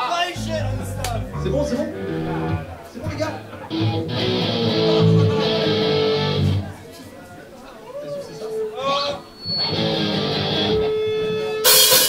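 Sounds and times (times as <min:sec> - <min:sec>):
voice: 0:00.0 - 0:09.3
electric guitar chords: 0:00.4 - 0:02.8, 0:03.5 - 0:06.8, 0:09.7 - 0:11.0.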